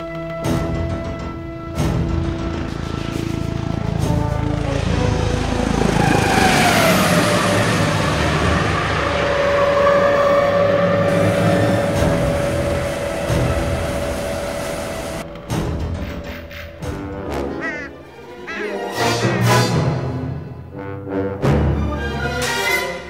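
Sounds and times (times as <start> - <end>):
helicopter flying: 0.0 - 20.7
film score music: 0.0 - 23.0
rushing swell with falling tone: 4.8 - 15.2.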